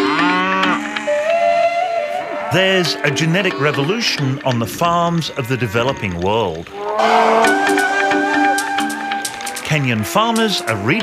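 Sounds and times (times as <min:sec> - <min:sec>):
cow mooing: 0:00.0 - 0:11.0
steady held notes: 0:00.0 - 0:11.0.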